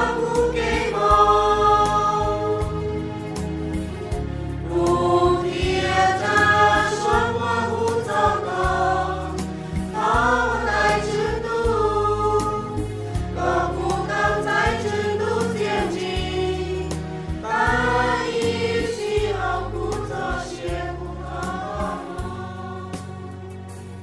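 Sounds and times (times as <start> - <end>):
band accompaniment with bass: 0.0 - 24.0
choir singing a hymn: 0.0 - 24.0.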